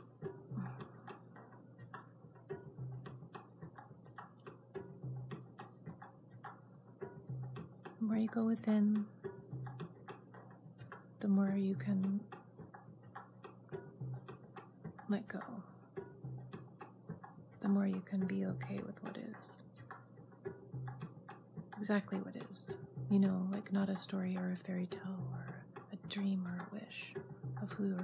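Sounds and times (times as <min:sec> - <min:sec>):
faint ticking: 0:00.0 - 0:28.0.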